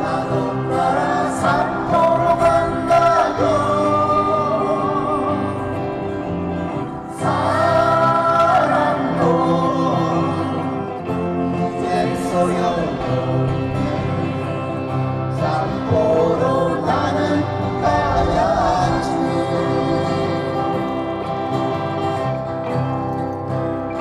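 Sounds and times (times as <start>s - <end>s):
man singing into microphone: 0.0s - 21.2s
strummed acoustic guitar: 0.0s - 24.0s.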